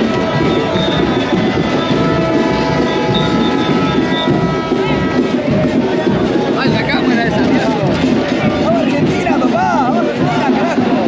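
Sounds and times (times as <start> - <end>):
horns holding long tones: 0.0 - 7.2
large crowd celebrating: 0.0 - 11.0.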